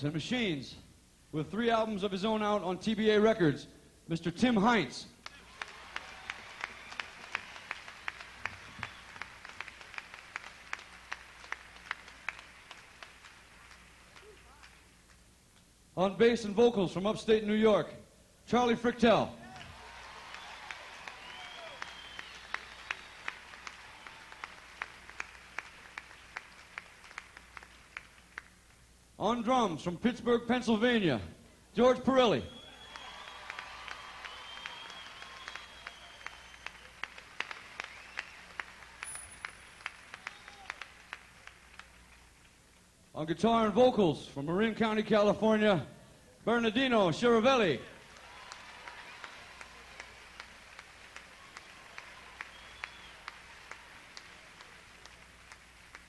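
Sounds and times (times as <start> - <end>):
audience applauding: 5.2 - 14.9, 19.5 - 28.6, 32.6 - 42.6, 48.0 - 56.0.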